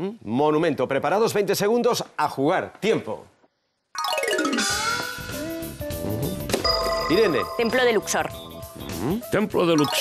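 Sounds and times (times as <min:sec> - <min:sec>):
electronic game show music: 0:04.0 - 0:10.0.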